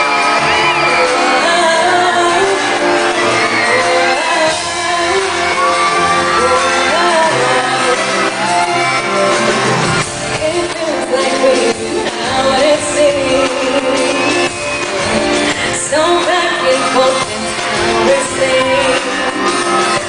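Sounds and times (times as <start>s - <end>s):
woman singing into microphone: 0.0s - 9.0s, 10.0s - 20.0s
amplified backing band: 0.0s - 20.0s
audience shouting and screaming: 0.0s - 20.0s.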